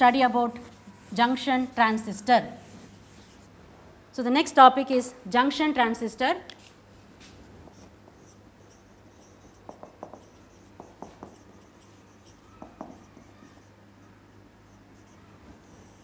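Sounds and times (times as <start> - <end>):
marker squeaking on whiteboard: 7.7 - 16.0.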